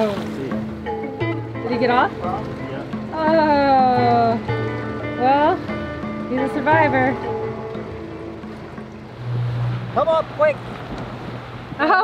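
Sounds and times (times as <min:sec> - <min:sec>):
music with held low notes: 0:00.0 - 0:11.8
wind and water hiss: 0:00.0 - 0:12.0.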